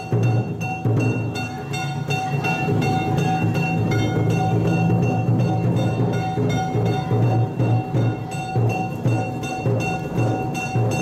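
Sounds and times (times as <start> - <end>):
ringing metal gongs struck: 0.0 - 11.0
taiko drums beaten: 0.0 - 11.0.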